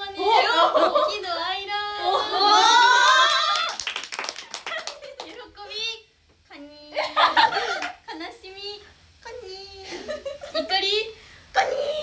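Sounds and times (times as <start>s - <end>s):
women talking and laughing: 0.0s - 3.0s, 6.8s - 8.5s, 9.6s - 11.1s.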